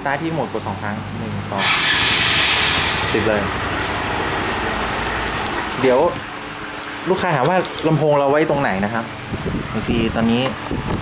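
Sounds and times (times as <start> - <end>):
motorcycle engine starting and running: 1.6 - 6.2.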